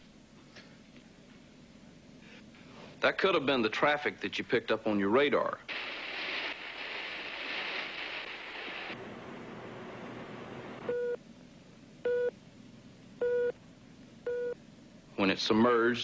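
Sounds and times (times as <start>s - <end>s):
rushing hiss: 5.7s - 9.0s.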